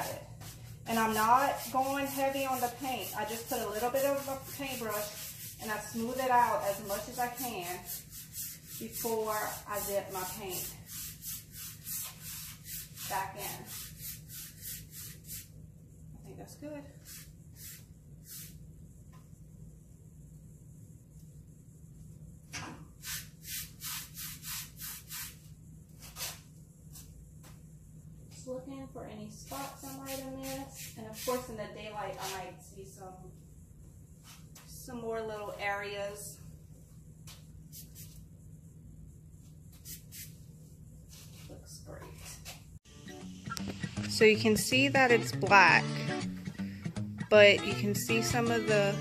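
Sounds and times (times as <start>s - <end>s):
paintbrush strokes on wood: 0.0s - 15.5s, 41.0s - 42.6s
steady low hum: 0.0s - 49.0s.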